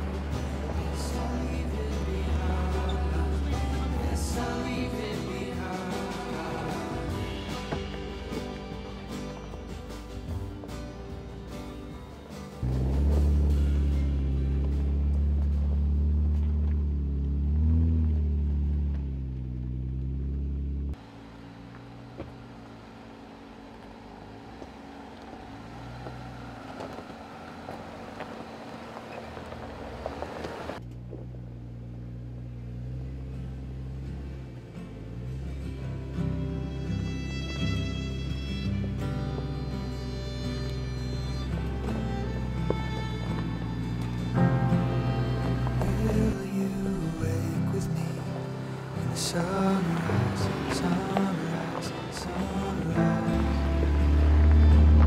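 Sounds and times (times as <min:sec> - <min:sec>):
background music: 0:00.0 - 0:16.0, 0:35.1 - 0:55.0
off-road vehicle engines crawling: 0:00.0 - 0:55.0.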